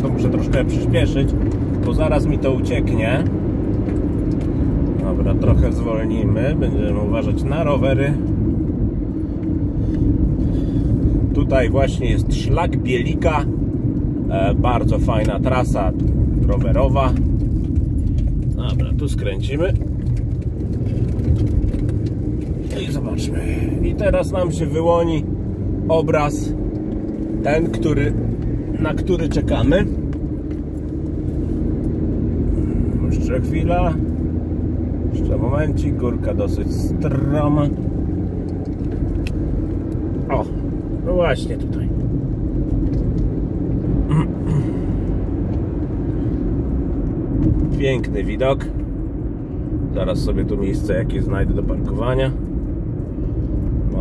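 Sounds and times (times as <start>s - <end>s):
car engine and road rumble: 0.0s - 54.0s.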